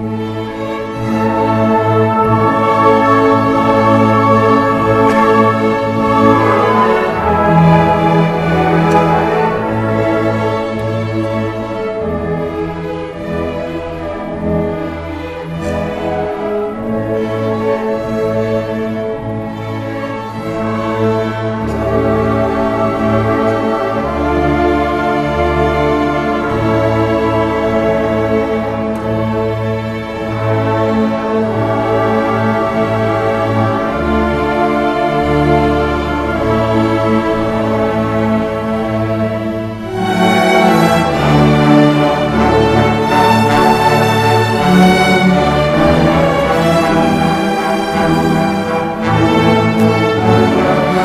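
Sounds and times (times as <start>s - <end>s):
string orchestra playing slowly: 0.0s - 51.0s.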